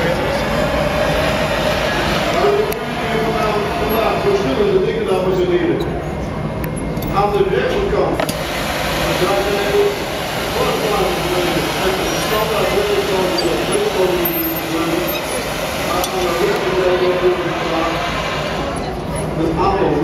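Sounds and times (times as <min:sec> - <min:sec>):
steady rushing noise: 0:00.0 - 0:05.7, 0:07.4 - 0:20.0
people talking indistinctly: 0:09.0 - 0:20.0.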